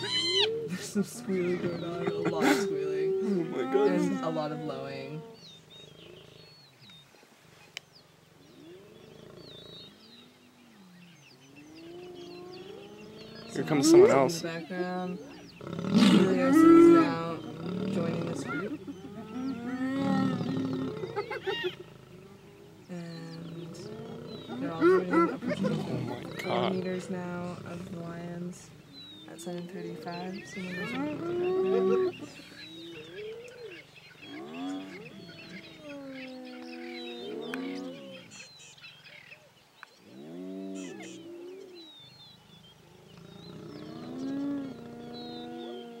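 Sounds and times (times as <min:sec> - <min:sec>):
hyena squeals: 0:00.0 - 0:00.7
hyenas calling: 0:00.0 - 0:06.4, 0:11.6 - 0:39.4, 0:40.0 - 0:46.0
birds chirping: 0:00.0 - 0:46.0.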